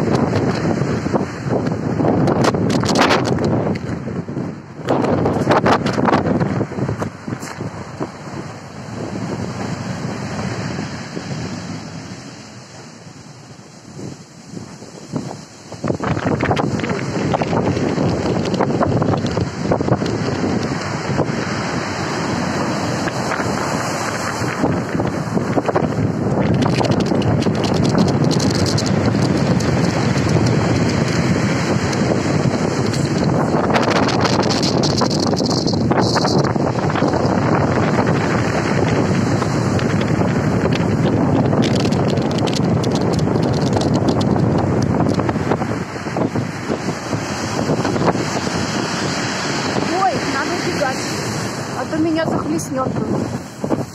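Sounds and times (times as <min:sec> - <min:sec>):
surf breaking on shore: 0:00.0 - 0:53.9
wind noise on microphone: 0:00.0 - 0:53.9.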